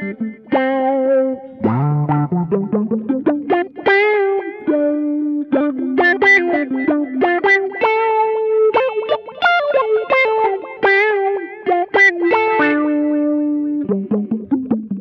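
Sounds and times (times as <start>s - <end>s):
electric guitar melodic run: 0.0s - 15.0s.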